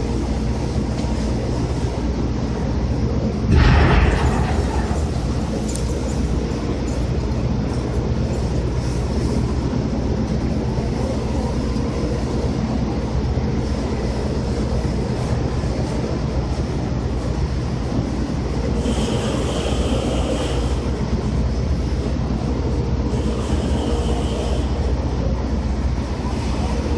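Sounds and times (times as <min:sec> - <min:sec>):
heavy machinery rumbling: 0:03.3 - 0:26.9
high-pitched whine: 0:03.5 - 0:07.4.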